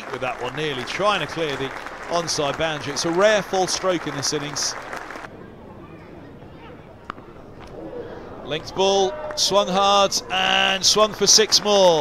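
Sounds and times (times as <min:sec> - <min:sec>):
low background ambience: 0:00.0 - 0:12.0.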